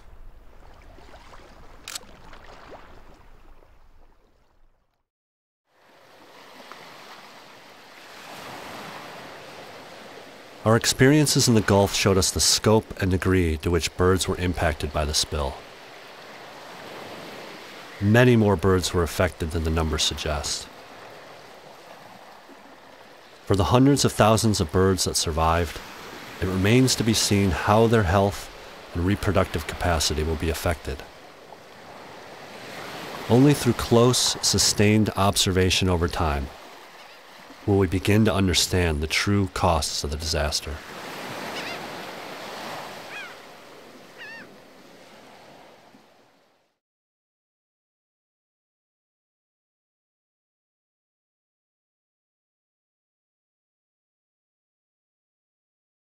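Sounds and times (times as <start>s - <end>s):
gentle surf on sand: 0.0s - 4.5s, 5.7s - 46.6s
short bird calls: 41.3s - 43.5s, 44.1s - 44.6s.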